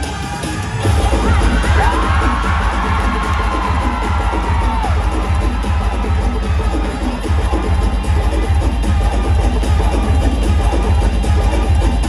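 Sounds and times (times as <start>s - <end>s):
dance music with heavy bass beat: 0.1s - 12.0s
audience cheering: 0.8s - 8.5s.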